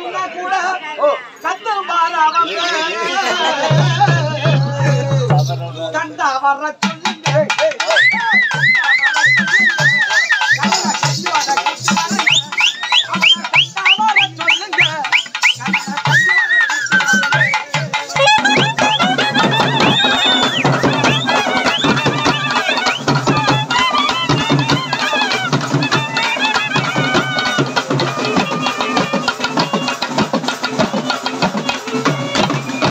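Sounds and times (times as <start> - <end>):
barrel drums beating: 8.6 - 32.9
shrill reed melody: 11.8 - 32.8.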